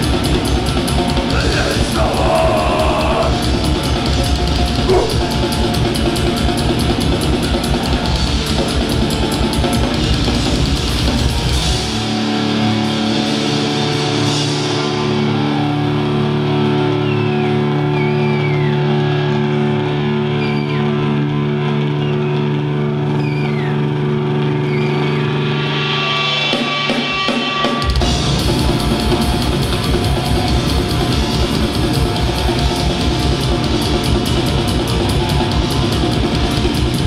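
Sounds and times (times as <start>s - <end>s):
distorted guitars: 0.0s - 18.0s, 18.7s - 37.0s
drums: 0.0s - 37.0s.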